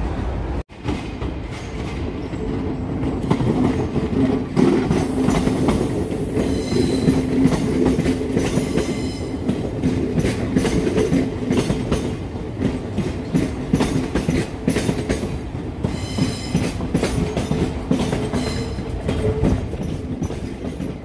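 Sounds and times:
steady low train hum: 0.0 - 21.0
train wheels clicking over rail joints: 0.7 - 21.0.

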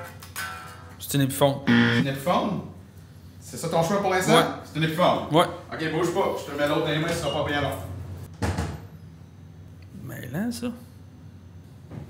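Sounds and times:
low steady hum: 1.7 - 3.4.

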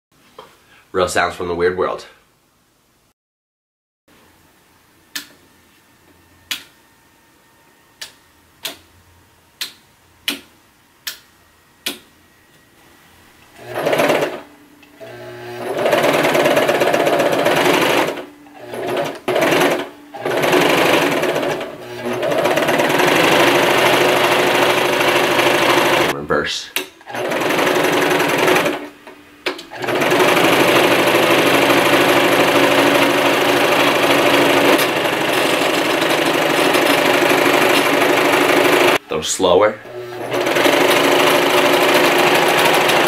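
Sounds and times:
sewing machine clattering: 13.6 - 14.4, 15.6 - 26.1, 27.1 - 28.9, 29.7 - 39.0, 40.2 - 43.0.

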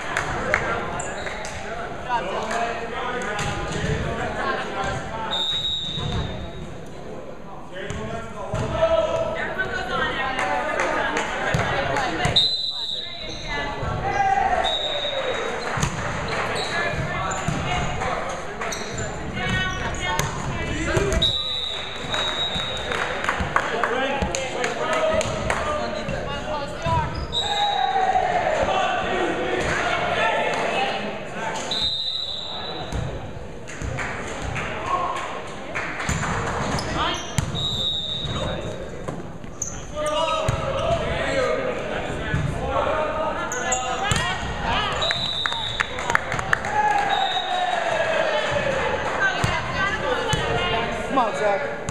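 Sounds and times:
voices talking and calling: 39.6 - 51.9.

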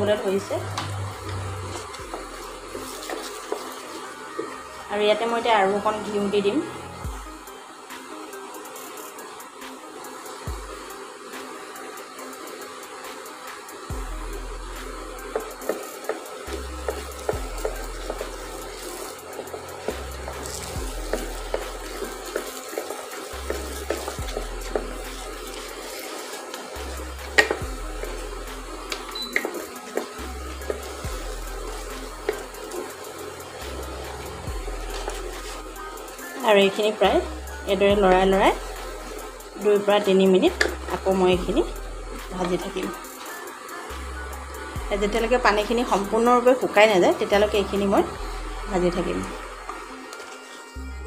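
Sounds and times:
background music: 0.0 - 51.0
cooktop cooling fan whirring: 0.0 - 51.0
wooden spatula scraping pot: 0.7 - 4.6, 15.3 - 37.0.

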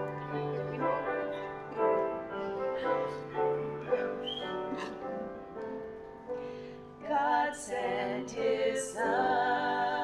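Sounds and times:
piano playing slow chords: 0.0 - 7.0.

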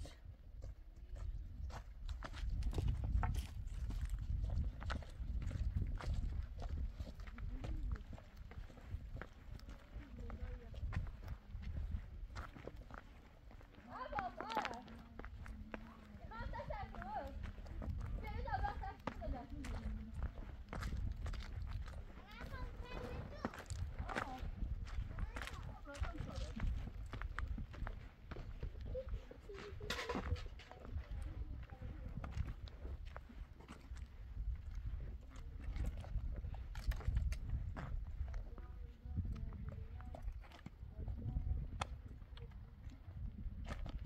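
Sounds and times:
footsteps crunching on stony ground: 0.0 - 44.0
wind rumbling on microphone: 0.0 - 44.0.

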